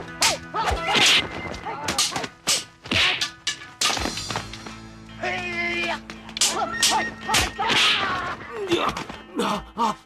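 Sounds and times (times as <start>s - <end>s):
sharp fight whacks: 2.0s - 4.4s.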